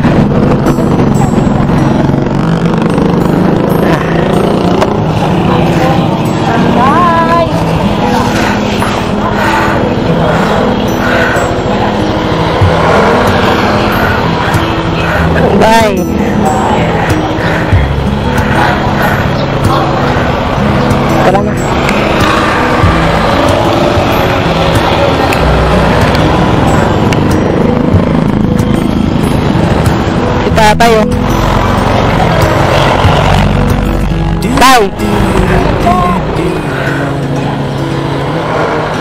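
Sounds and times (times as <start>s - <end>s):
motorcycle engine idling: 0.0s - 39.0s.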